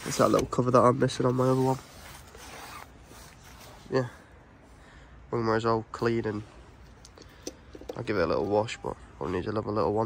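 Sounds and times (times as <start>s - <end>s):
soft rustling: 0.0s - 4.2s.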